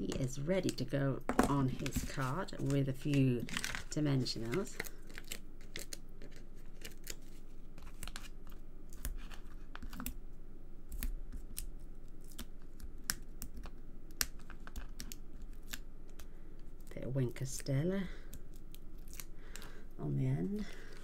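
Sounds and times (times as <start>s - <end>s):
paper clicks crackles and rustles: 1.4s - 10.1s.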